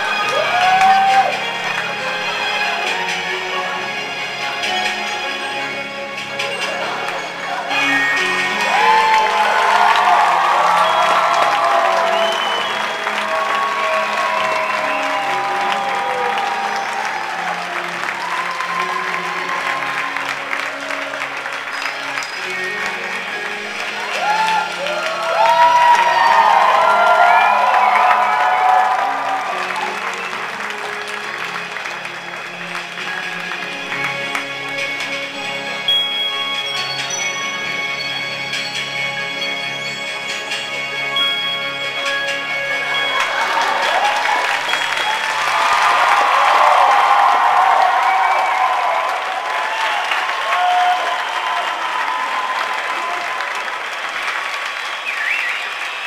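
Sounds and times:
audience cheering and applauding: 0:00.0 - 0:04.8, 0:06.3 - 0:36.9, 0:42.4 - 0:56.0
music over loudspeakers: 0:00.0 - 0:49.7.

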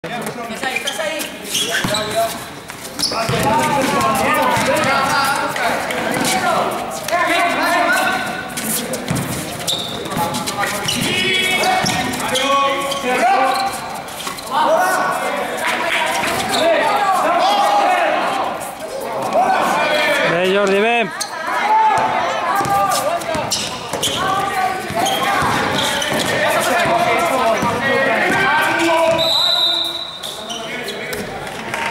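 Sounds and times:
players calling out: 0:00.2 - 0:31.9
basketball bouncing on hard court: 0:03.2 - 0:05.2, 0:24.9 - 0:28.4.

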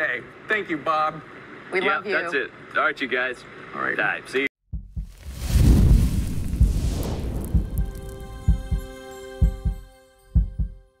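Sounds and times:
deep thumps: 0:04.7 - 0:09.7
deep rumble: 0:04.8 - 0:08.9
rushing whoosh: 0:05.2 - 0:08.7.

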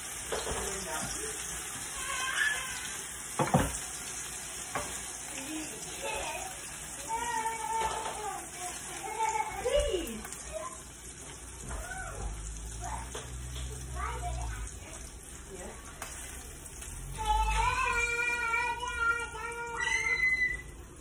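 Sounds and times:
patties sizzling in a frying pan: 0:00.0 - 0:21.0
metal utensil knocking on pan: 0:03.4 - 0:03.8.

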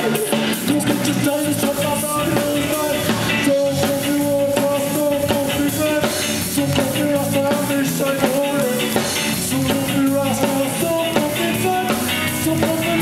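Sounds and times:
drum kit: 0:00.0 - 0:13.0
electric bass: 0:00.0 - 0:13.0
electric guitar: 0:00.0 - 0:13.0.

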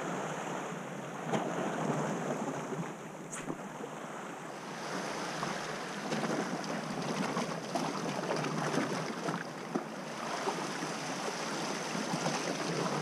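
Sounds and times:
sea waves splashing over rocks: 0:01.2 - 0:13.0.

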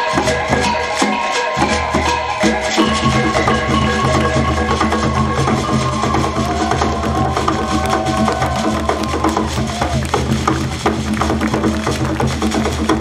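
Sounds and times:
sliding high melodic line: 0:00.0 - 0:09.5
hand drums fast rhythm: 0:00.0 - 0:13.0.

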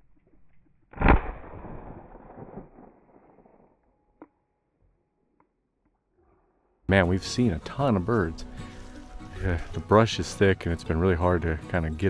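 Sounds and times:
shotgun shot echoing: 0:01.0 - 0:03.4.

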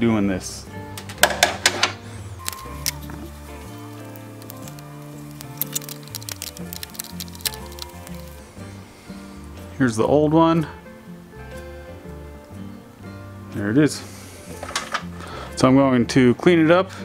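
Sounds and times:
background music with bass line: 0:00.0 - 0:17.0.

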